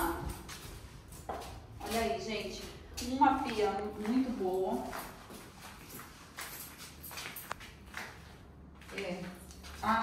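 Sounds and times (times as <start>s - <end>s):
sandal footsteps on tiles: 0.0s - 10.0s.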